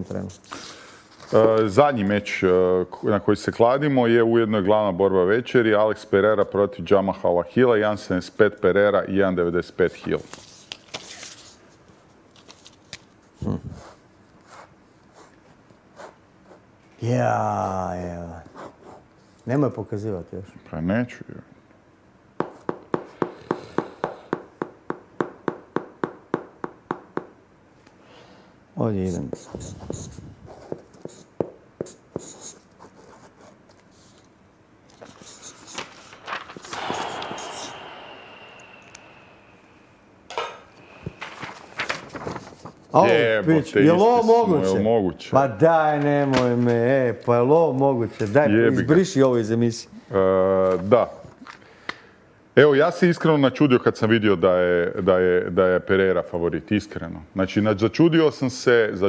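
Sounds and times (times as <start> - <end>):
paper rustling: 10.1 - 13.2, 34.9 - 37.2, 41.1 - 43.0
pens scratching on paper: 29.0 - 34.3, 34.9 - 37.7.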